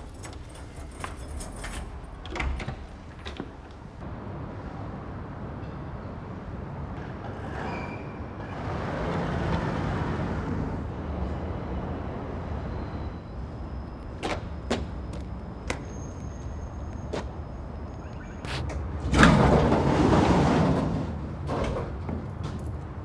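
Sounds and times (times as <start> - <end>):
low outdoor rumble: 2.9 - 7.4.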